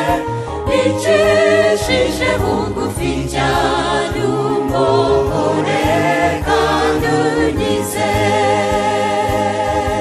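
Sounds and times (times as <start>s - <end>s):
choir singing gospel in harmony: 0.0s - 10.0s
keyboard and bass backing: 0.0s - 10.0s.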